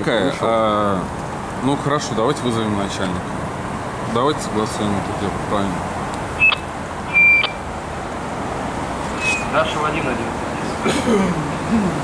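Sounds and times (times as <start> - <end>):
street traffic hum: 0.0 - 12.0
high electronic beeps: 6.4 - 7.6.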